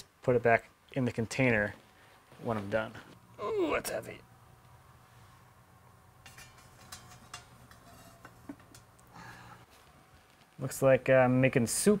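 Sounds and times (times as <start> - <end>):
low steady hum: 0.0 - 11.9.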